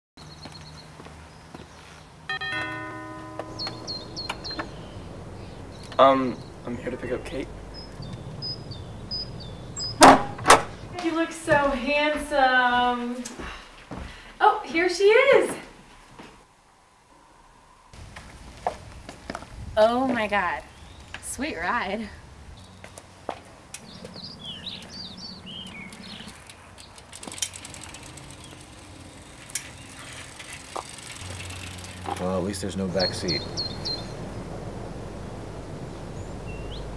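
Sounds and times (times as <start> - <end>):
doorbell chime: 2.3 - 6.6
small bird chirping: 3.4 - 11.0, 23.8 - 27.1, 27.8 - 34.4, 35.3 - 36.9.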